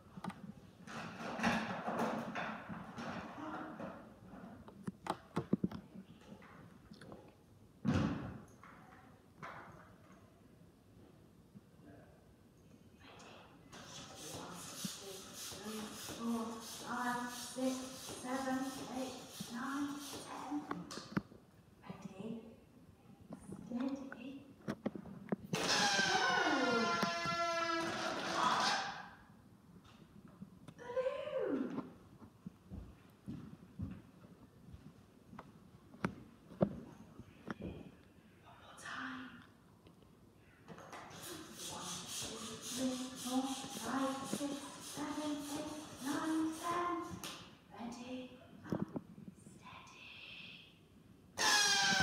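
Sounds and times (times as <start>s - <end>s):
balloon pump hissing air strokes: 25.6s - 28.8s, 41.1s - 46.8s, 51.4s - 52.0s
air squealing out of balloon: 25.6s - 29.0s, 51.4s - 52.0s
balloon rubber squeaks: 25.6s - 29.0s, 51.4s - 52.0s.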